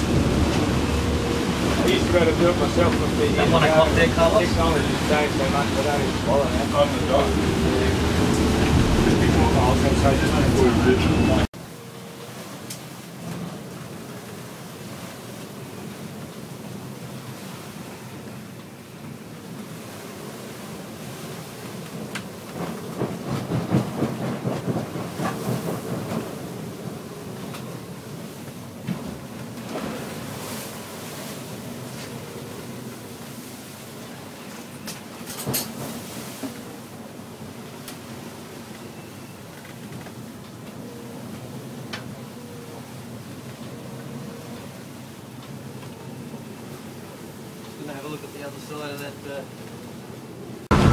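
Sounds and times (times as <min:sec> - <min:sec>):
gale wind and breaking seas: 0:00.0 - 0:50.9.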